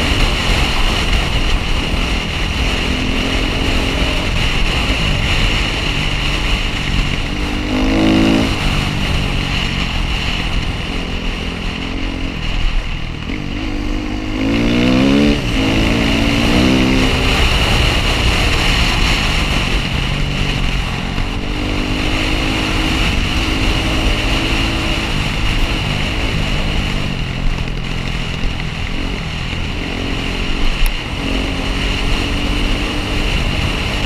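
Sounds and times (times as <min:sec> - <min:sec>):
dirt bike engine revving: 0:00.0 - 0:34.0.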